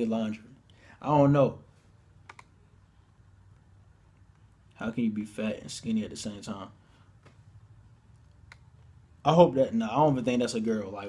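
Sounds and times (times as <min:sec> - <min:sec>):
faint computer clicks: 0:02.2 - 0:02.6.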